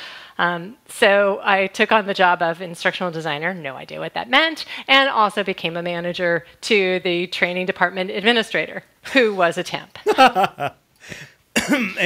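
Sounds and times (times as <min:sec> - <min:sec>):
person laughing: 0:10.0 - 0:12.0
person speaking: 0:10.0 - 0:12.0.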